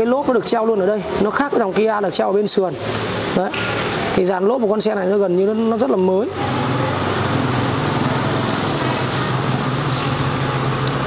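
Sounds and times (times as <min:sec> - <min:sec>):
high-pitched machinery whine: 0:00.0 - 0:11.0
low machinery hum: 0:00.0 - 0:11.0.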